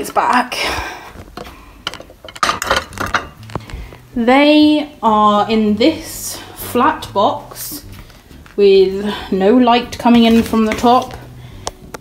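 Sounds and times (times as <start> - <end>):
plates clinking on a table: 1.8 - 3.4.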